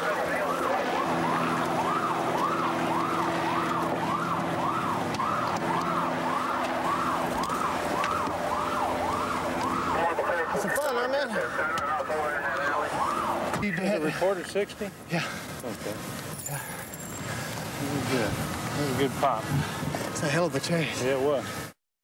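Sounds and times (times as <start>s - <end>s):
electronic siren sweeping: 0.0s - 11.2s, 11.9s - 13.6s.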